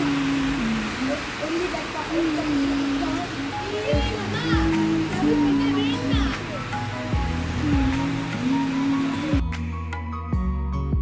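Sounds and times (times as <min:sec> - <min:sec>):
heavy rain hiss: 0:00.0 - 0:09.6
background music: 0:02.2 - 0:11.0.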